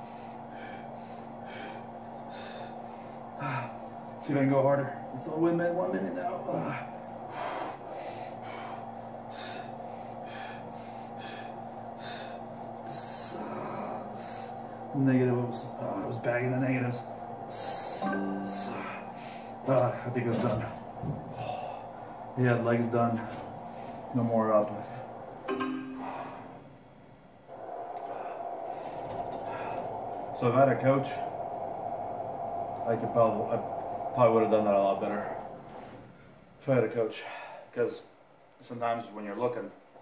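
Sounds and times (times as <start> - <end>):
man breathing hard: 0.0 - 4.2, 6.5 - 15.0, 17.0 - 19.7, 20.7 - 22.4, 23.0 - 26.8, 27.5 - 30.4
leg press machine humming: 0.0 - 36.8
person exhaling hard: 25.9 - 26.7.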